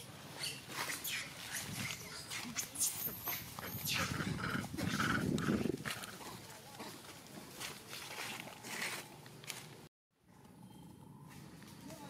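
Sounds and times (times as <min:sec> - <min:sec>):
monkeys squeaky calls: 0:00.4 - 0:05.6.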